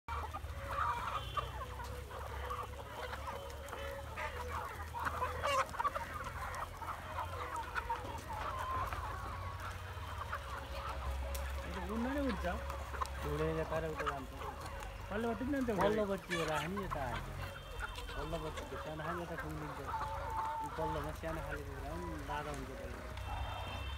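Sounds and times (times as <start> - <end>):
chickens clucking: 0.1 - 23.9.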